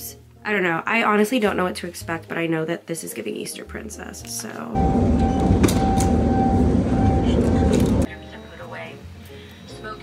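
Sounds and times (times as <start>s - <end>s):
conveyor belt rumble: 4.8s - 8.1s.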